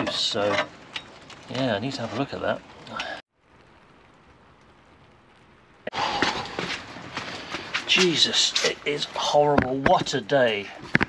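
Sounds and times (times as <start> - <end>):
faint steady hiss: 0.0 - 11.0
heavy rain falling: 0.0 - 11.0.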